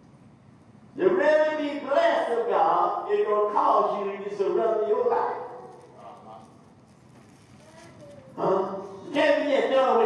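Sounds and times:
man preaching into a microphone: 1.0 - 6.5, 8.4 - 10.0.

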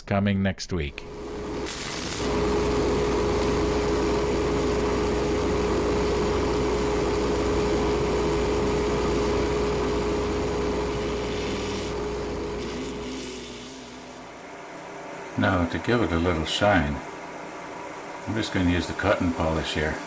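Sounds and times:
wood lathe motor whine: 1.0 - 20.0.

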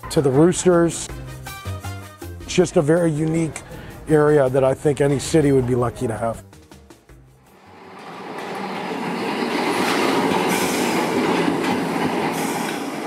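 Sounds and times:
streetcar wheels rumbling on rails: 7.6 - 13.0.

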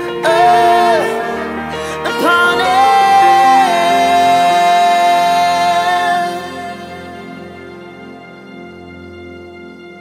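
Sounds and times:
instrumental accompaniment: 0.0 - 10.0.

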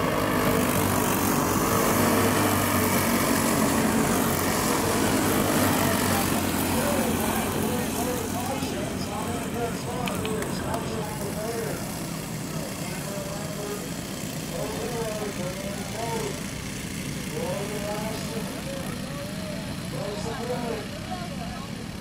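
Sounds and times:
go-kart engines racing: 0.0 - 22.0.

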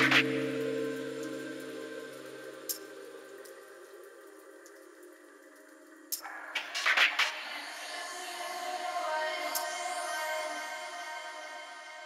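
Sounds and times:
sustained synth chord: 0.0 - 4.7
faint ticks: 0.0 - 6.3, 9.5 - 9.8.

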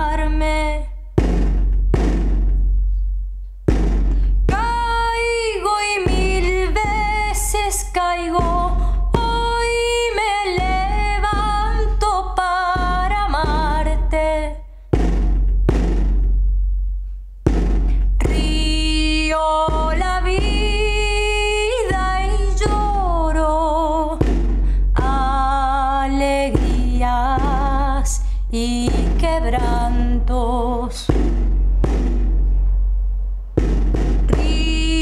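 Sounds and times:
woman singing: 0.0 - 1.0, 4.5 - 14.6, 18.2 - 24.2, 25.0 - 31.1, 34.3 - 35.0
deep hand drum strokes: 1.1 - 14.2, 14.9 - 35.0.

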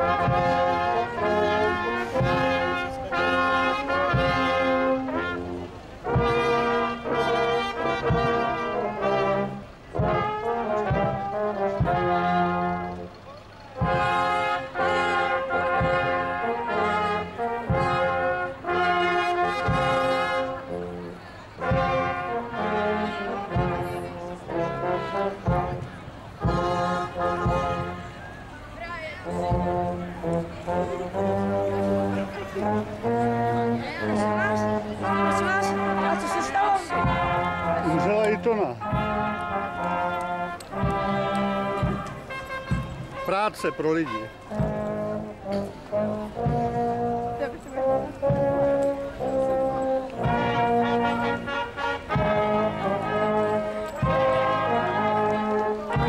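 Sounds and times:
tuba bass line: 0.0 - 13.2, 13.8 - 28.2, 29.3 - 56.0
marching brass band playing: 0.0 - 56.0.

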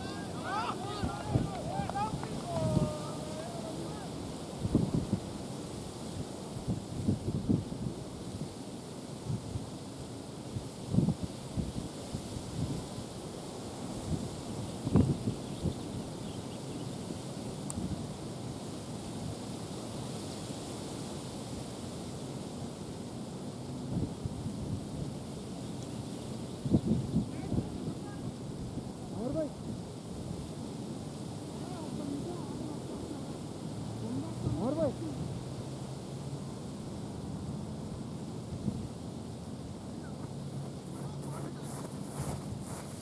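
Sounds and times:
wind on microphone: 0.0 - 23.1, 23.8 - 35.4, 38.4 - 43.0.

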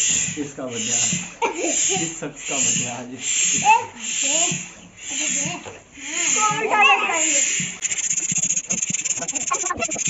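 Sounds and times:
hand pump hissing air: 0.0 - 10.0
children's voices and laughter: 1.2 - 2.6, 3.6 - 7.7, 8.6 - 10.0.

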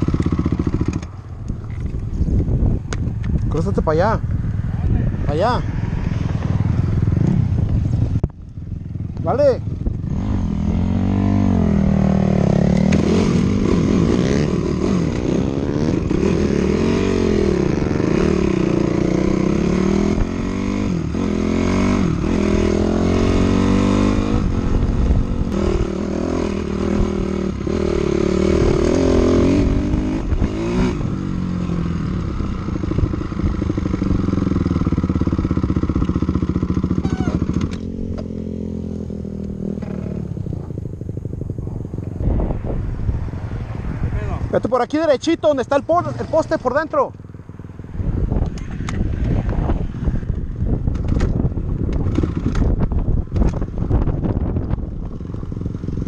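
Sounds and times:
dirt bike engine revving: 0.0 - 1.1, 4.2 - 42.5.

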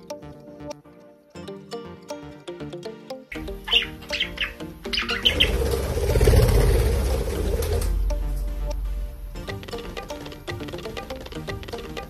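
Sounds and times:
light plucked music: 0.0 - 12.0
budgerigar chirping: 3.3 - 6.0
rushing noise with low rumble: 5.4 - 9.4.

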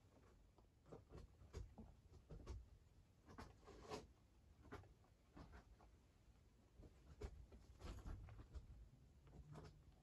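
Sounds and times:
rabbits chewing pellets: 0.0 - 10.0.

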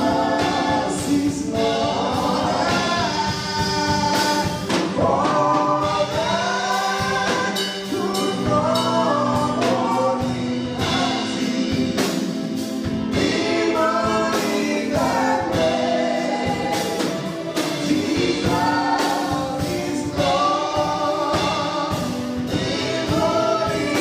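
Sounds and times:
choir singing gospel song: 0.0 - 24.0.

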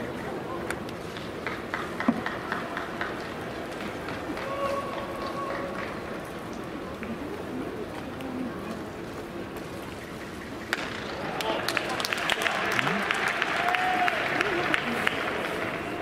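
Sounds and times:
crowd murmuring: 1.6 - 16.0.

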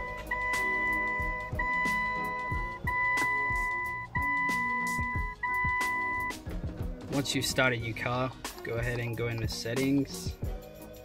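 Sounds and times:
car warning chime beeping: 0.0 - 6.4
background music: 0.0 - 11.0.

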